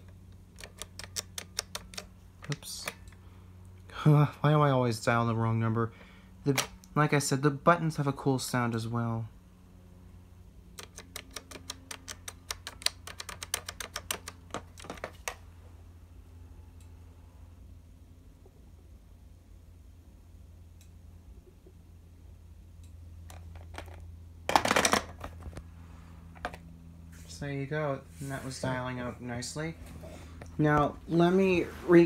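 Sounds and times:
telephone keypad buttons clicking: 10.8 - 14.6.

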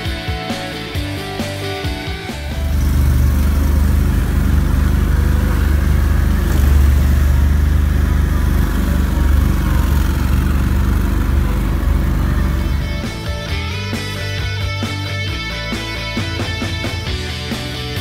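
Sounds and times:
vehicle engine running under load: 2.4 - 14.0.

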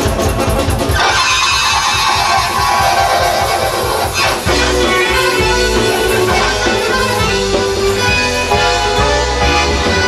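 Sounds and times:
folk band music: 0.0 - 10.0
keyboard: 0.0 - 10.0
accordion: 2.6 - 10.0.

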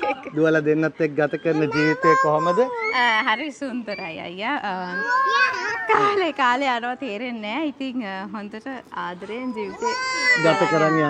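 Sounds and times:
people talking: 1.3 - 11.0.

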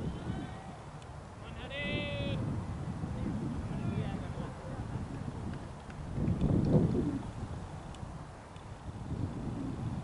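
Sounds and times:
distant voice shouting: 0.0 - 2.4
wind rumbling on microphone: 0.0 - 10.0.

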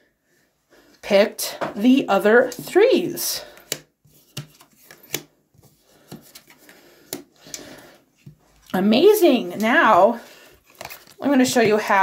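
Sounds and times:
cards sliding: 3.5 - 8.4, 10.6 - 11.2
playing cards snapping: 3.6 - 5.3.

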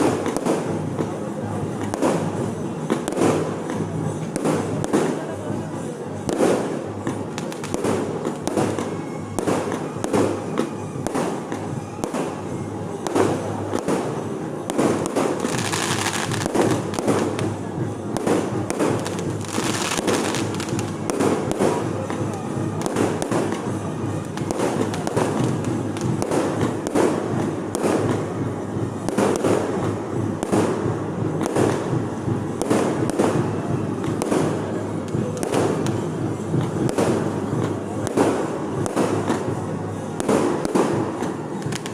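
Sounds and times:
fireworks bangs and crackles: 0.0 - 41.9.

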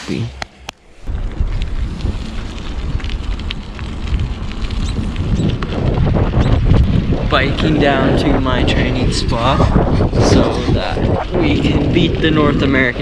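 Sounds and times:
wind buffeting microphone: 0.9 - 13.0.

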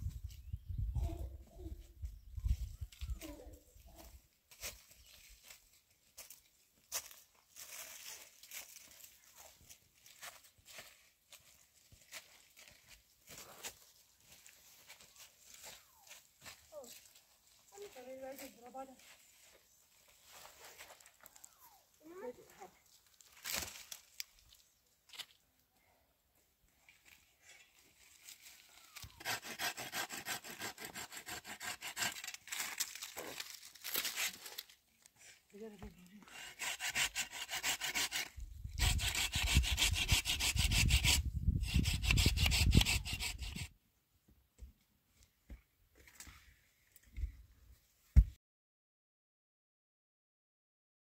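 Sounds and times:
hand saw cutting branch: 28.9 - 34.7, 36.2 - 43.7.

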